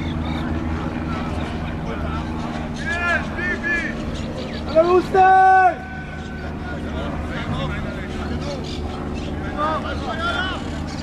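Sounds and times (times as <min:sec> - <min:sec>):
engine hum: 0:00.0 - 0:11.0
faint distant voices: 0:00.0 - 0:11.0.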